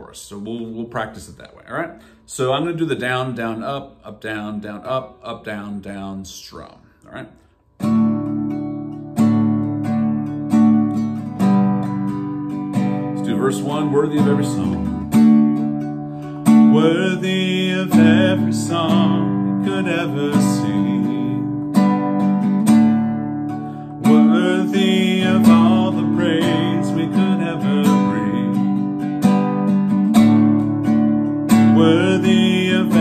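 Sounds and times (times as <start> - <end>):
classical guitar strumming: 7.8 - 33.0.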